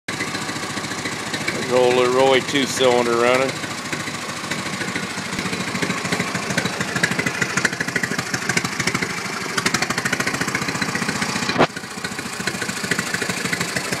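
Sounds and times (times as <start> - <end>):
stationary engine running: 0.1 - 14.0
sharp crack: 11.2 - 11.8.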